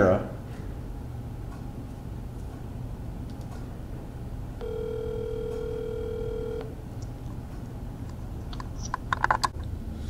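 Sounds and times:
phone ringback tone: 0:04.6 - 0:06.8.

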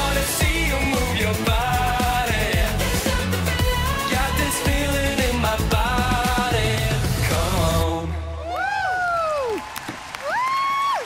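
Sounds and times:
audience cheering and applauding: 0:08.3 - 0:11.0
high whoops: 0:08.4 - 0:11.0.

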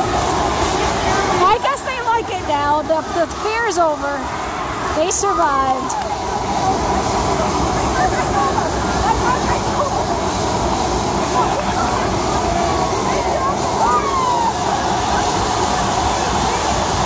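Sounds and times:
continuous rumble and hiss: 0:00.0 - 0:17.0
faint distant voices and shouts: 0:02.8 - 0:17.0.

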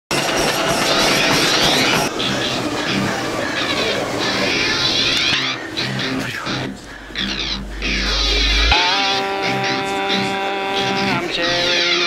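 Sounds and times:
treadmill running: 0:00.1 - 0:08.3.

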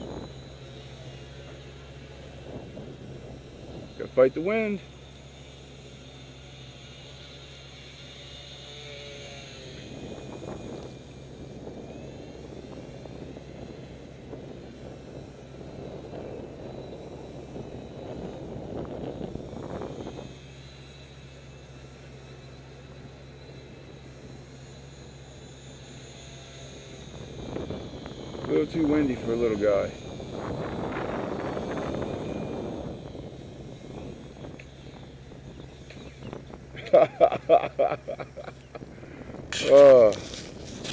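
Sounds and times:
wind rumble on microphone: 0:00.0 - 0:04.8, 0:08.4 - 0:20.7, 0:26.7 - 0:40.9
electric motor whine: 0:00.0 - 0:40.9.

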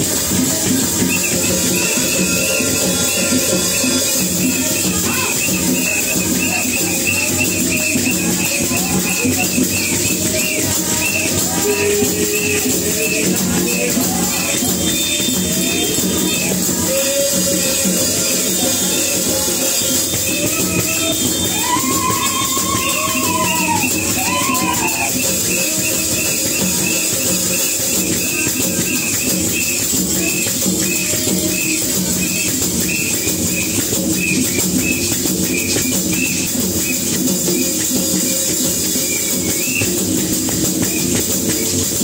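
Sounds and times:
church worship music: 0:00.0 - 0:42.0
drum kit and hand drums beat: 0:00.0 - 0:42.0.

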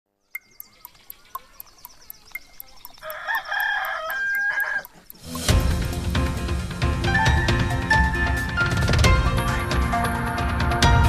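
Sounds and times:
fast even ticking: 0:00.4 - 0:06.4
rooster crowing: 0:03.0 - 0:05.0
music with drums: 0:05.2 - 0:11.0.

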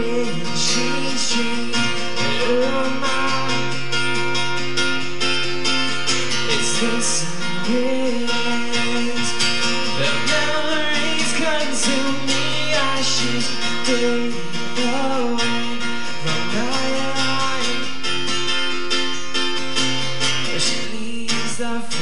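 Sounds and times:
man singing: 0:00.0 - 0:04.4, 0:06.1 - 0:18.3, 0:20.3 - 0:22.0
acoustic guitar strumming: 0:00.0 - 0:22.0.

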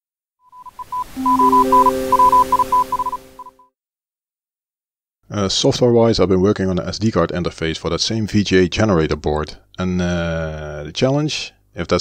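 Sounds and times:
high electronic beeping tone: 0:00.5 - 0:03.7.

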